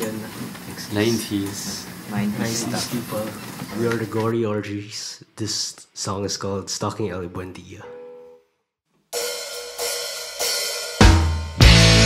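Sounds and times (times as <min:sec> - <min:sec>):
cymbal strikes ringing: 0:09.2 - 0:11.8.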